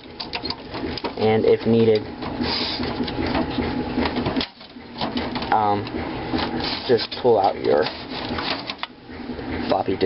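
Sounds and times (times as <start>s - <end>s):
hands scraping cables in metal case: 6.3s - 8.9s.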